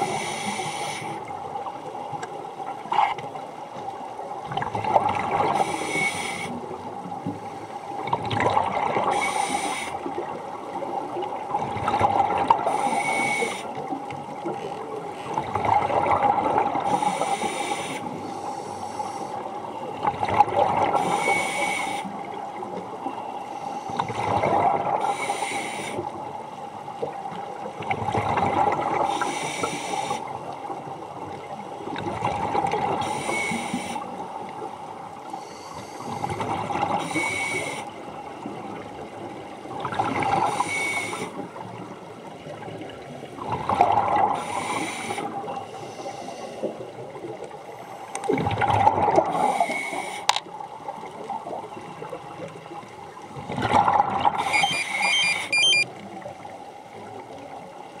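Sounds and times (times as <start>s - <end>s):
air hissing through regulator: 0.0s - 1.2s, 5.6s - 6.6s, 16.9s - 19.3s
exhaled bubbles rushing: 8.0s - 9.1s, 42.8s - 44.4s, 48.3s - 49.3s, 53.4s - 54.6s.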